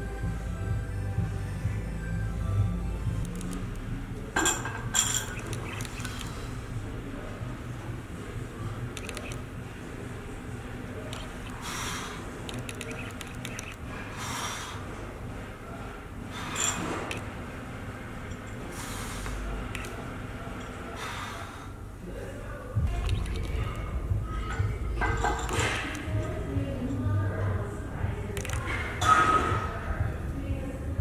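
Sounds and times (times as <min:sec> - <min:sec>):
man breathing hard: 0:11.6 - 0:12.3, 0:14.0 - 0:15.0.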